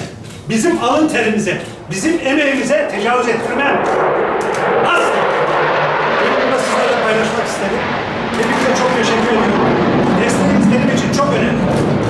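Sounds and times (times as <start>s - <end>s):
man talking: 0.0s - 3.9s, 4.8s - 5.6s, 6.2s - 7.8s, 8.4s - 11.7s.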